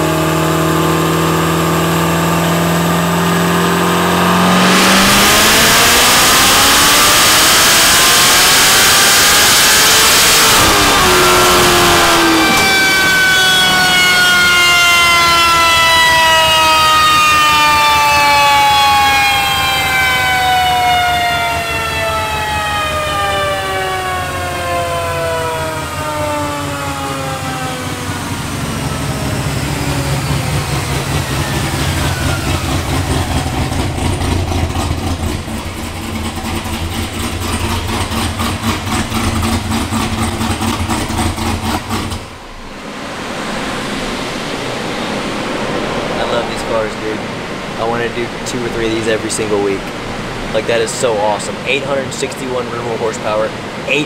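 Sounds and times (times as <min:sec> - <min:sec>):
car engine idling: 0:00.0 - 0:54.0
dyno whine falling in pitch: 0:00.0 - 0:54.0.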